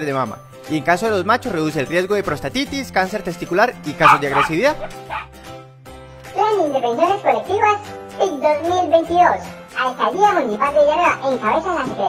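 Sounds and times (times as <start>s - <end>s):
background music: 0.0s - 12.0s
puppies yapping: 4.0s - 5.4s
short barks: 4.0s - 5.4s.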